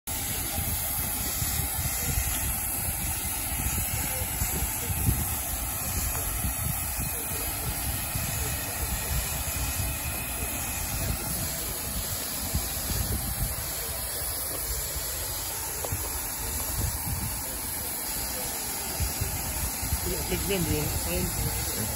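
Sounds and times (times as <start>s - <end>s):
steam hissing: 0.1s - 21.9s
wind buffeting microphone: 0.1s - 21.9s.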